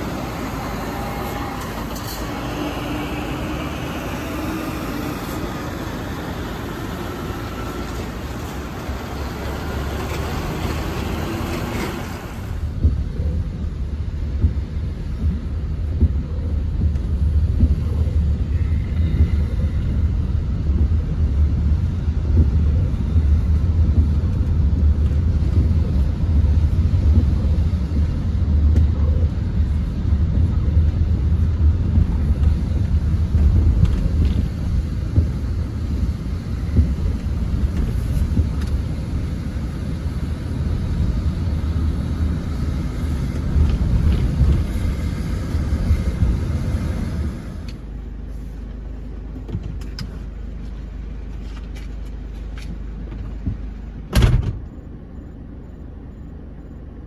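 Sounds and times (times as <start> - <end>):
car engine and road rumble: 0.0 - 57.0.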